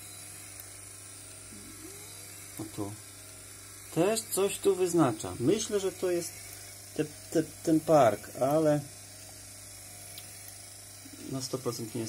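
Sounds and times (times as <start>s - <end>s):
low electrical hum: 0.0s - 12.0s
man speaking: 3.9s - 6.4s, 11.2s - 12.0s.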